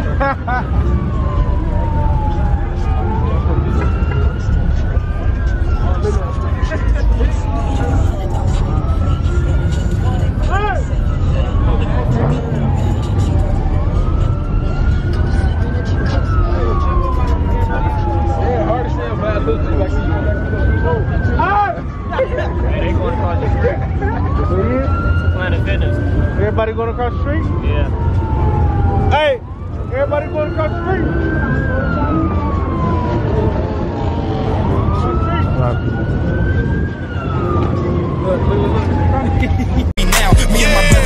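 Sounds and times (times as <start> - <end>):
crowd voices: 0.0 - 26.4, 29.8 - 41.0
police siren wailing: 0.0 - 41.0.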